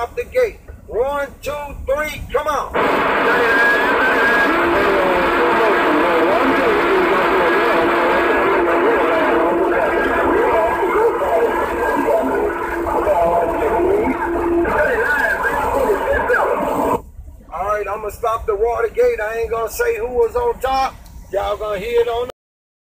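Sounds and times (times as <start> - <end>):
garbled radio voices: 2.7 - 17.0
steady radio whistle: 2.8 - 17.0.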